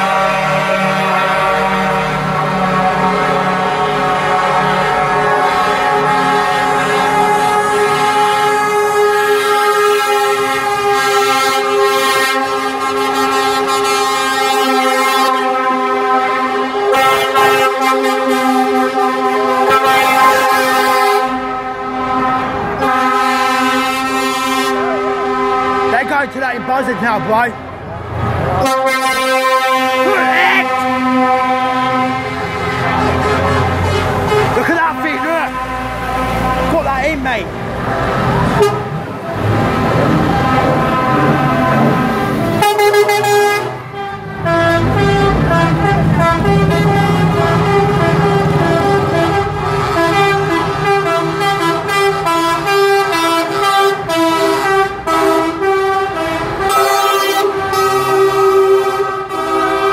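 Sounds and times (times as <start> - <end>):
lorry air horns: 0.0 - 26.8, 28.5 - 59.9.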